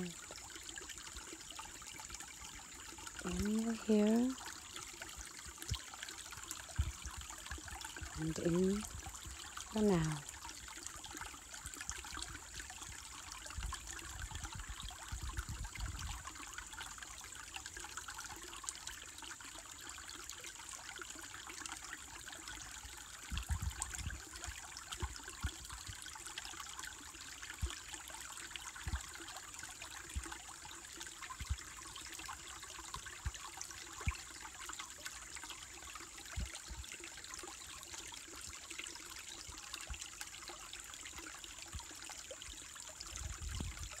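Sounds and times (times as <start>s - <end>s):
stream trickling over rocks: 0.0s - 44.0s.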